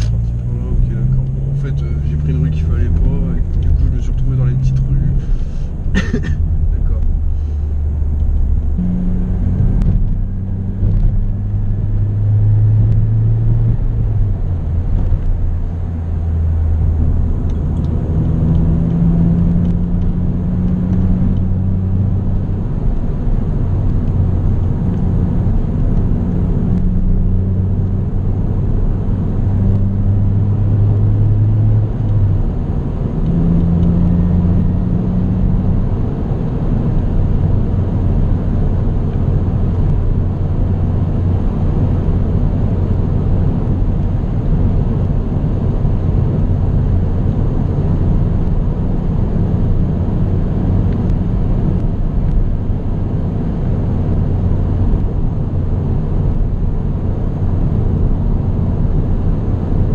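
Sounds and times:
car engine humming: 0.0s - 59.9s
road and tyre noise: 0.0s - 59.9s.

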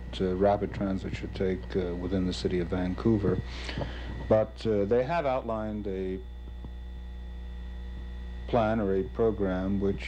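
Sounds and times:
low mains hum: 0.0s - 10.0s
man talking: 0.1s - 3.5s, 4.3s - 6.2s, 8.5s - 10.0s.

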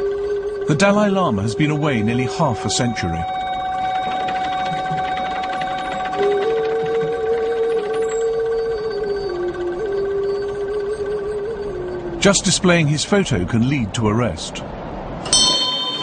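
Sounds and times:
bell-like ringing drone: 0.0s - 12.5s, 15.2s - 16.0s
person chanting long notes: 0.0s - 12.6s.

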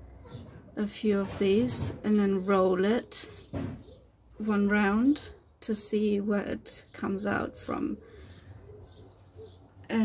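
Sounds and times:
bird chirps: 3.2s - 4.1s, 6.9s - 9.9s
bird cooing: 7.5s - 9.8s.

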